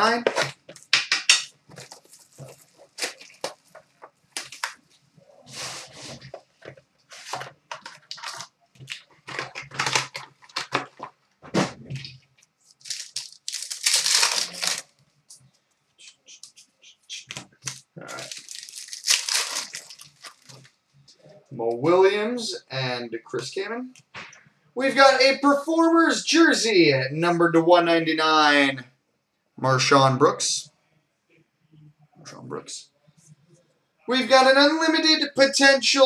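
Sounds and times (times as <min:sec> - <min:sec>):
plastic and foil wrapping crinkling: 0:01.7 - 0:15.0, 0:17.5 - 0:20.8.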